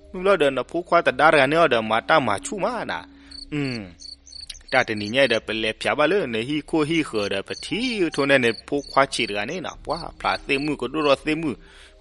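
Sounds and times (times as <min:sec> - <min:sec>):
man narrating: 0:00.2 - 0:11.6
crickets chirping: 0:03.1 - 0:05.6, 0:06.5 - 0:11.1.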